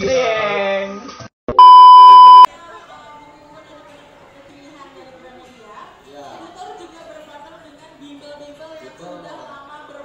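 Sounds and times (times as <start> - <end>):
high test tone beep: 1.5 - 2.5.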